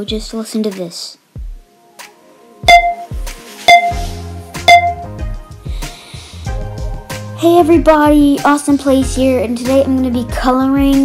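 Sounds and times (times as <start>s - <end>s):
low steady musical sound: 0.0s - 11.0s
electronic countdown beeps: 2.6s - 5.2s.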